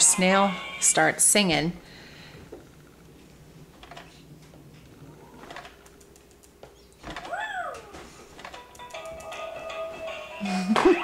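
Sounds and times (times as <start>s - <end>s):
short rising and falling coo: 7.2s - 8.0s
toy playing a tune: 8.6s - 11.0s.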